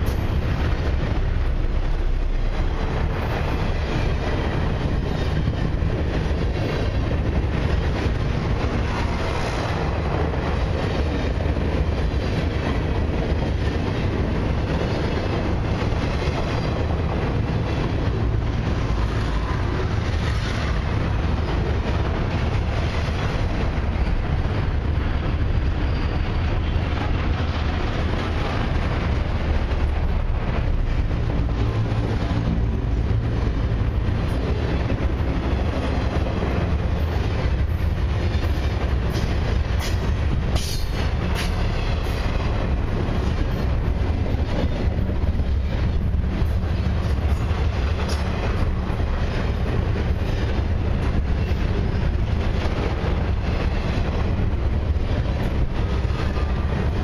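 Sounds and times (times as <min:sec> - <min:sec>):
train wheels on rails: 0:00.0 - 0:57.0.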